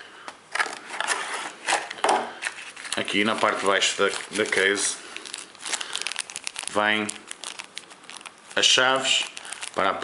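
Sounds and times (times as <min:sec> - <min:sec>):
plastic packaging rustling: 0:00.5 - 0:10.0.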